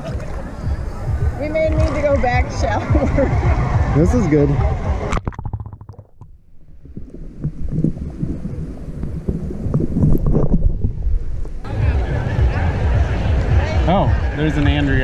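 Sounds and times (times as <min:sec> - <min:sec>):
muffled underwater sloshing: 0:00.0 - 0:11.7
open-air water and beach sounds: 0:00.0 - 0:15.0
microphone splashing into water: 0:04.6 - 0:11.7
bubbly clicks: 0:05.1 - 0:10.8.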